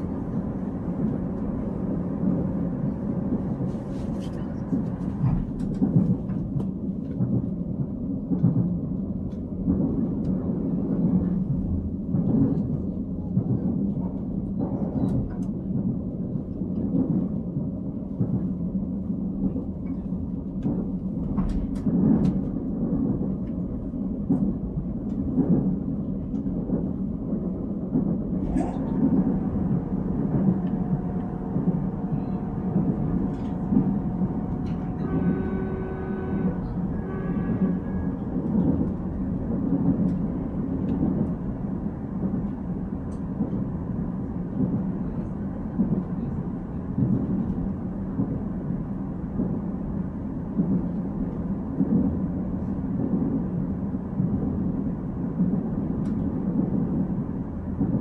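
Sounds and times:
train interior low rumble: 0.0s - 58.0s.

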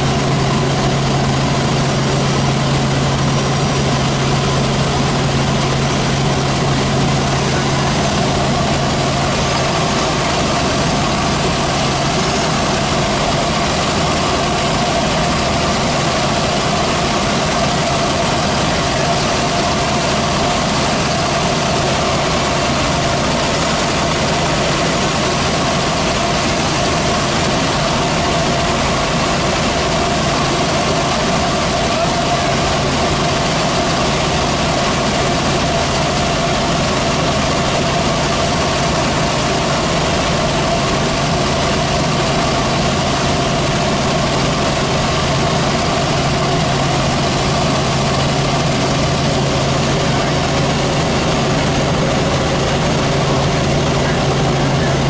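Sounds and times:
helicopter cabin drone: 0.0s - 55.0s.

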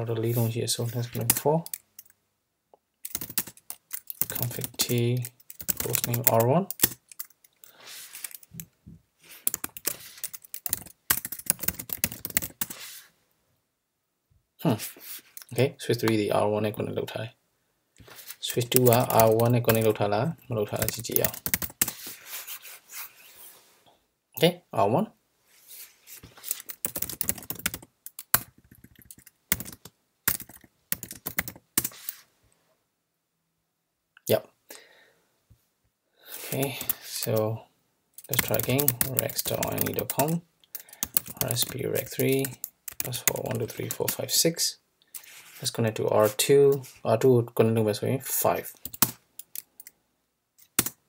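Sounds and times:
computer keyboard typing: 3.0s - 7.6s, 9.4s - 12.8s, 18.6s - 20.0s, 20.6s - 22.0s, 26.5s - 32.2s, 38.2s - 44.3s, 48.7s - 49.9s, 50.6s - 51.0s.

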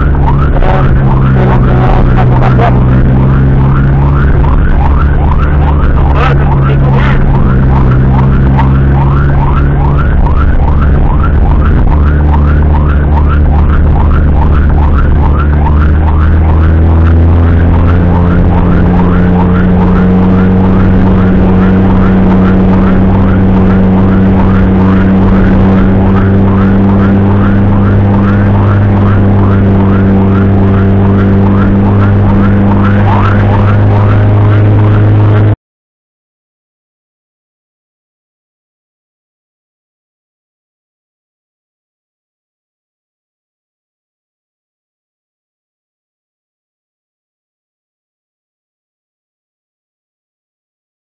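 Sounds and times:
ambulance siren yelping: 0.0s - 35.6s
engine drone: 0.0s - 35.6s.

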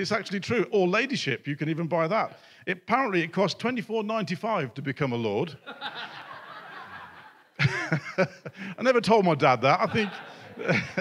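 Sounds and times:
congregation laughing: 5.6s - 11.0s
man chuckling: 7.0s - 8.8s, 9.9s - 11.0s.

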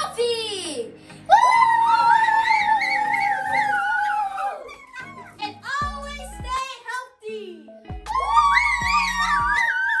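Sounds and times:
background music: 0.0s - 10.0s
children screaming with excitement: 1.3s - 5.3s, 8.1s - 10.0s.

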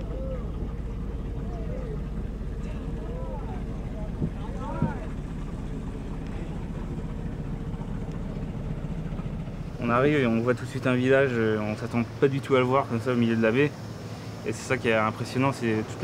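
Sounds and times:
boat engine running: 0.0s - 16.0s.

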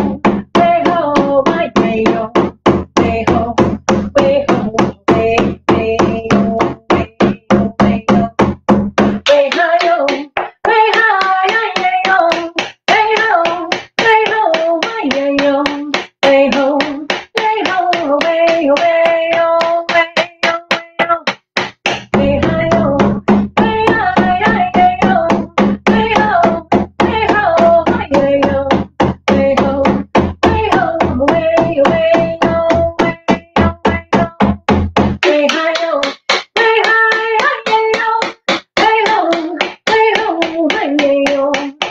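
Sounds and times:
woman singing: 0.0s - 8.6s, 9.2s - 21.4s, 22.1s - 34.5s, 35.2s - 41.9s
hand drum beat: 0.0s - 41.9s.

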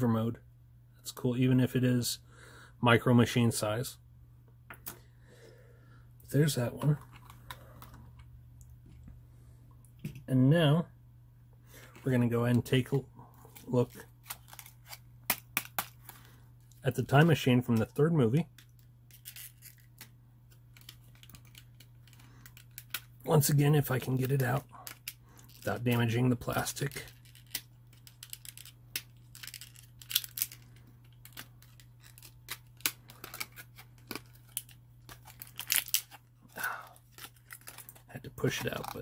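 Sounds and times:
faint steady hum: 0.0s - 39.0s
plastic packaging crackling: 20.7s - 39.0s.

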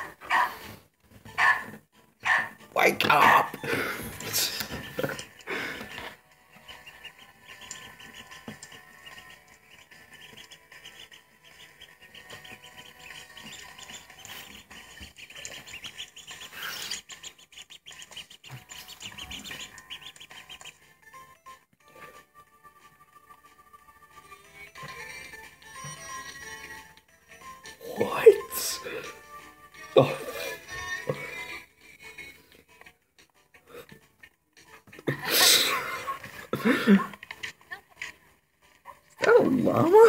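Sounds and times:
background music: 0.0s - 40.0s
duckling peeping: 3.4s - 21.3s.

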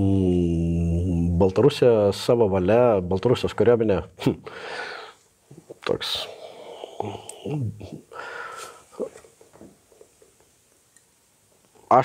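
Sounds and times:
man murmuring: 0.0s - 1.5s, 5.5s - 8.3s
man breathing: 4.4s - 5.3s, 6.2s - 9.2s.

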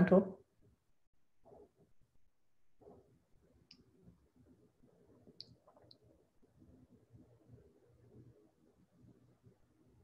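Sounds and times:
faint high-pitched clicks: 3.6s - 3.9s, 5.2s - 6.1s.

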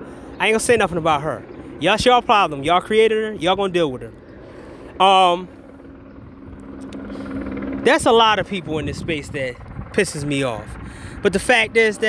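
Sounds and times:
low mechanical hum: 0.0s - 12.0s
man speaking: 0.4s - 4.2s, 5.0s - 5.5s, 7.8s - 12.0s.

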